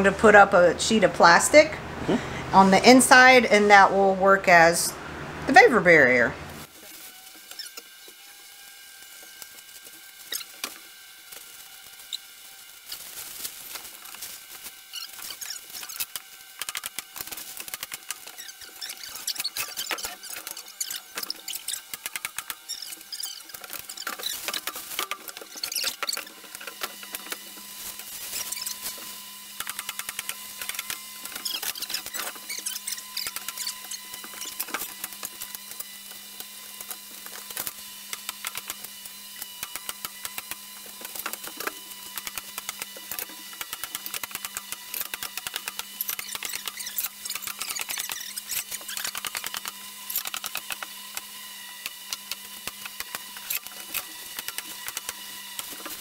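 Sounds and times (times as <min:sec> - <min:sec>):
plastic sheeting crinkling: 0:06.6 - 0:07.9, 0:08.5 - 0:21.8, 0:22.7 - 0:29.3.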